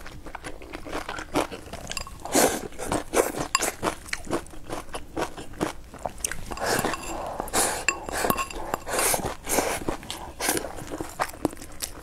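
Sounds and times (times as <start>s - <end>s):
crunching and chewing food: 0.0s - 12.0s
chopsticks clicking on ceramic bowl: 7.8s - 8.9s.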